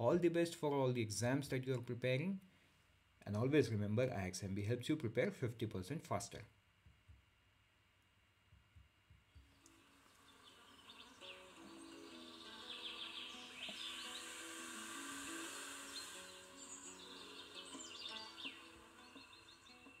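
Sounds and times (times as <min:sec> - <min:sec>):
soft music of slow held notes: 0:09.4 - 0:20.0
bird-like chirps: 0:09.6 - 0:20.0
hiss: 0:09.7 - 0:20.0.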